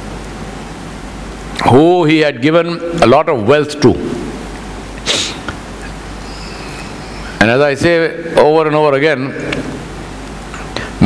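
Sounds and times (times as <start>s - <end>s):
low steady hum: 0.0s - 11.0s
man sniffing: 5.0s - 5.6s.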